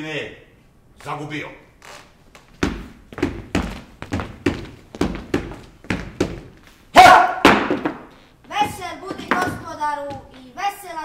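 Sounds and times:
poles knocking on wooden floor: 2.5 - 6.6, 7.4 - 10.4.

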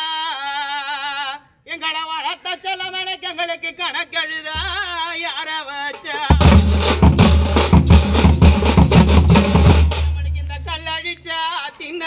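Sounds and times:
frame drums beating fast rhythm: 4.6 - 5.0, 6.2 - 11.0
person singing: 4.6 - 5.0
strong bass: 6.3 - 10.8.

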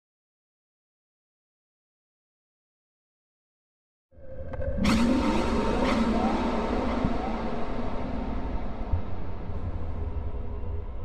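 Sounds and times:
low rumbling drone: 4.2 - 11.0.

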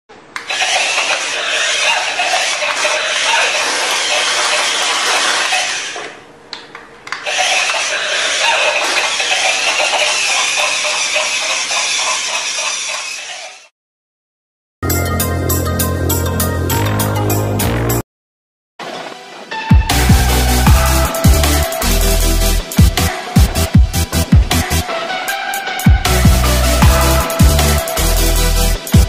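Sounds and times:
toy motor whirring and rattling: 0.5 - 6.1, 7.2 - 13.7.

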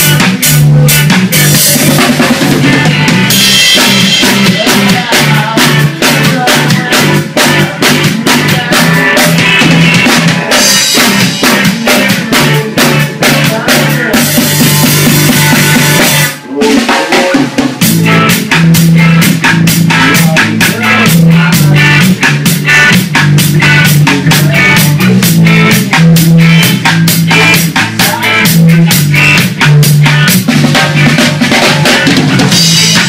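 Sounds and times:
electric bass low notes: 0.0 - 16.4, 17.6 - 33.0
drum kit beat: 0.0 - 33.0
electric guitar: 0.0 - 33.0
ska rock band playing: 0.0 - 33.0.

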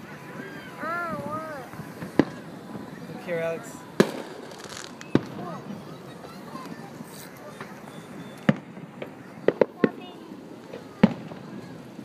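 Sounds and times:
fireworks bangs: 0.0 - 12.0
voices murmuring: 0.0 - 12.0.

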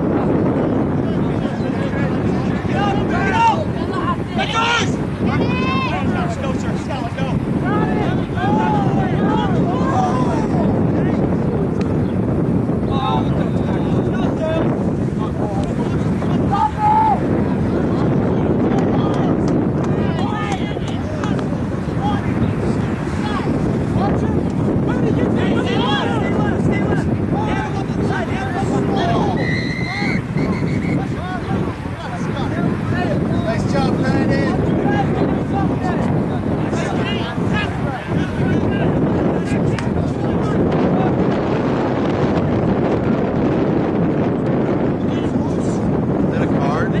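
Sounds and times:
wind buffeting microphone: 0.0 - 47.0
distant players shouting: 15.6 - 17.4
distant shouting: 16.0 - 17.7, 19.9 - 33.6
referee's whistle blast: 29.4 - 31.1.

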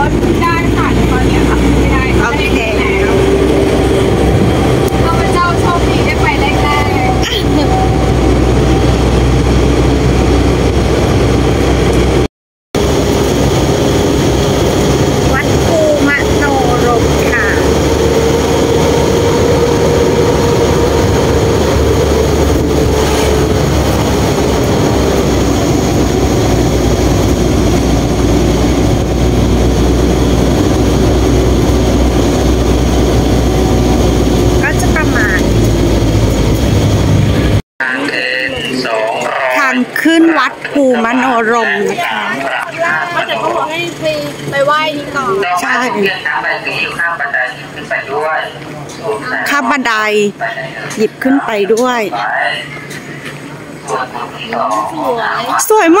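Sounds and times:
vehicle engine and road noise: 0.0 - 56.0.

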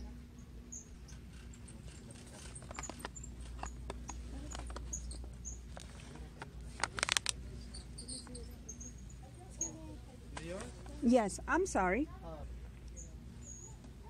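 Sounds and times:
plastic pouch crinkling: 6.7 - 7.4.

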